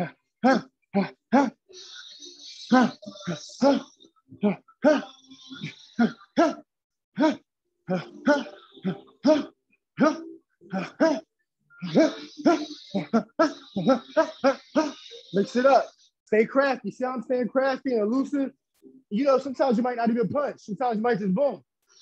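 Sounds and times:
man grunting: 0:00.0 - 0:01.6, 0:04.4 - 0:05.1, 0:06.0 - 0:06.6, 0:07.2 - 0:11.2.

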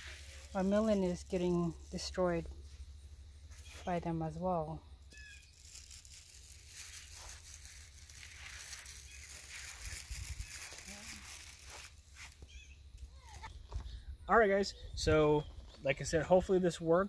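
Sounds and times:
steady hiss: 0:00.0 - 0:04.0, 0:05.0 - 0:13.4.

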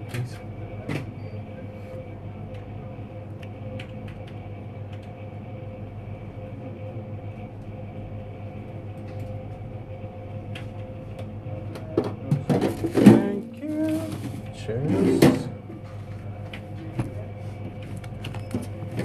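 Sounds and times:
faint steady whine: 0:00.0 - 0:19.0
low hum of indoor machinery: 0:00.0 - 0:19.0.

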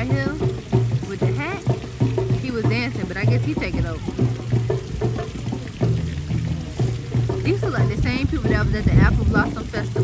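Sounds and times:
bass line of low held notes: 0:00.0 - 0:10.0
drum hits: 0:00.0 - 0:10.0.

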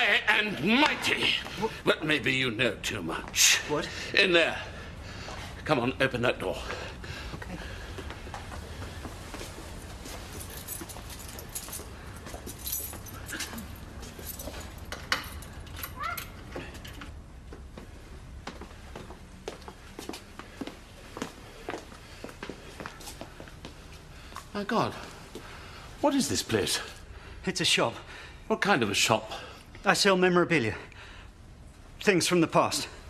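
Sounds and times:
footsteps: 0:06.5 - 0:15.5.

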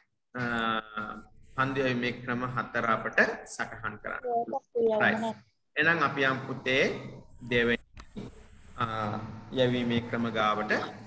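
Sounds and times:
person talking over video call: 0:00.3 - 0:11.0.

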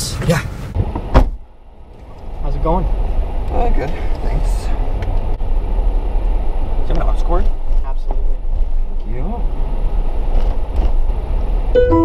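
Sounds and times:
car road and engine rumble: 0:00.0 - 0:12.0.

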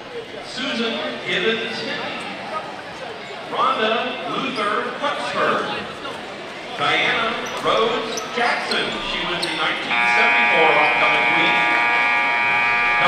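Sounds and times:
crowd chattering: 0:00.0 - 0:13.0
scoreboard horn buzzing: 0:09.8 - 0:13.0.

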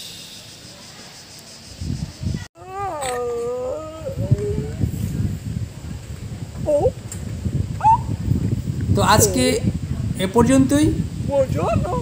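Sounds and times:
long howling call: 0:02.6 - 0:04.9, 0:07.8 - 0:08.2.

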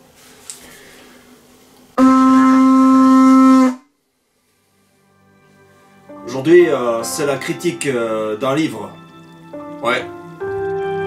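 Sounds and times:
animal horn blown: 0:02.0 - 0:03.9.

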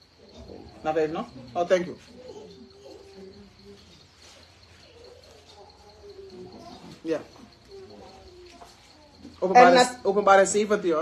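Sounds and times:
dove cooing: 0:00.0 - 0:09.9
cricket trill: 0:00.0 - 0:11.0.

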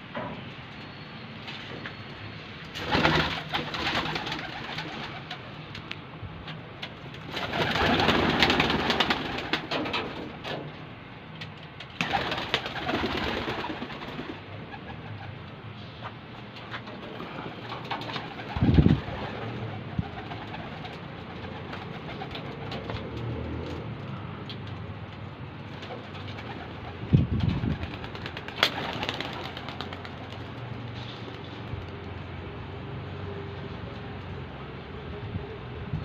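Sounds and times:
wings flapping: 0:02.7 - 0:05.6, 0:06.8 - 0:10.4, 0:11.8 - 0:15.3, 0:17.0 - 0:23.2, 0:25.7 - 0:32.0.

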